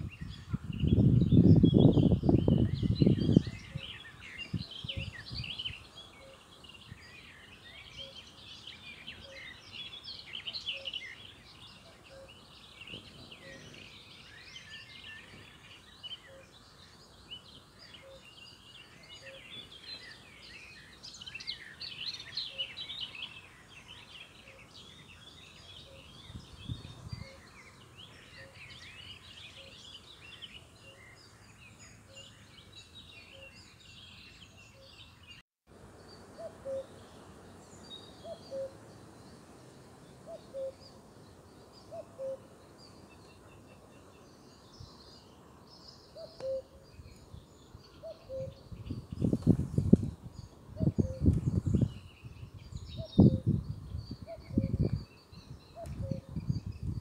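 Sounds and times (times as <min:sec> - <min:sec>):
small birds singing and chirping: 0:00.0 - 0:57.0.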